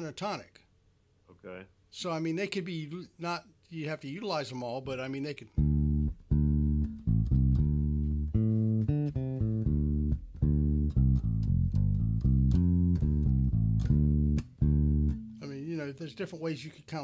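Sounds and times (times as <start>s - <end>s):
electric bass plucked notes: 5.6s - 15.5s.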